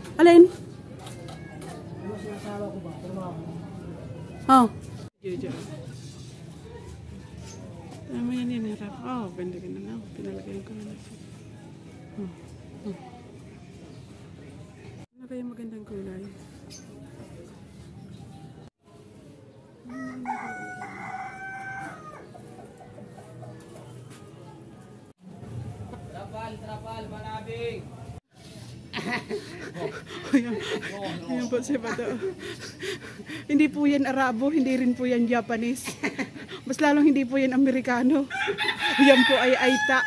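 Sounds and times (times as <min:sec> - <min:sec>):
faint voices talking: 0:00.0 - 0:40.0
rooster crowing: 0:19.9 - 0:22.4, 0:38.3 - 0:40.0.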